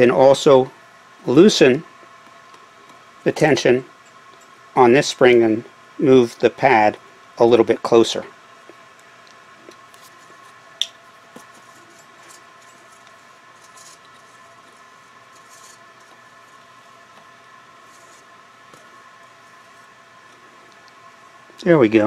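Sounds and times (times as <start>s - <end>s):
steady low hum: 0.0s - 22.0s
soft brushing noises: 9.6s - 10.6s, 11.3s - 20.6s.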